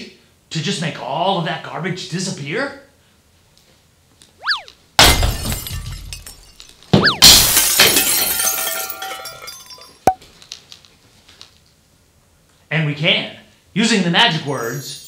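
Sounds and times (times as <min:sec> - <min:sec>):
whistling swoop: 0:04.4 - 0:04.8, 0:07.0 - 0:07.4
glass breaking crash: 0:05.0 - 0:10.1.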